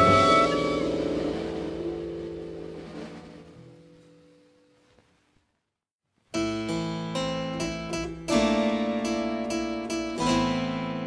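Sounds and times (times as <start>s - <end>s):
jazz ensemble held chord: 0.0s - 4.1s.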